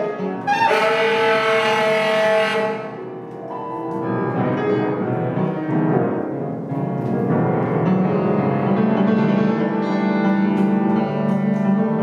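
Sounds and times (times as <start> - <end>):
tenor saxophone: 0.0 - 3.1
grand piano playing: 0.0 - 12.0.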